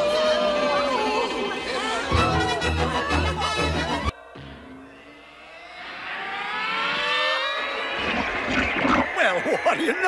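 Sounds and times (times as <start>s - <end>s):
rising pitched sweep: 2.7s - 9.2s.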